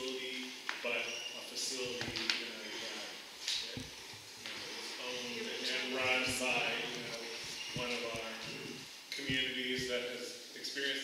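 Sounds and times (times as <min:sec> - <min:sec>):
person talking: 0:01.6 - 0:03.0, 0:03.6 - 0:10.1
light knocks: 0:09.2 - 0:09.9.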